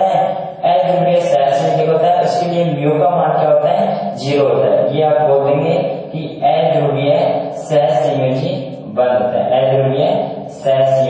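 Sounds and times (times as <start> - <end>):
man talking slowly: 0.0 - 11.0.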